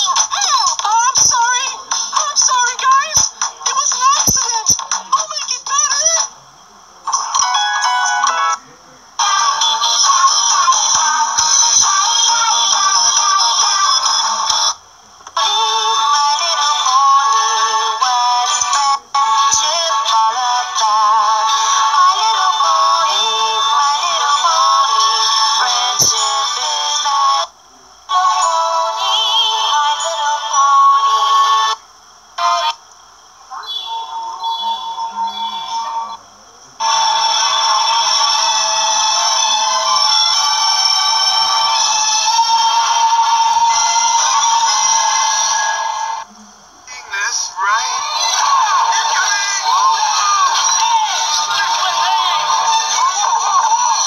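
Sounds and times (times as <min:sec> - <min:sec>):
children's tv music with singing: 0:00.0 - 0:54.0.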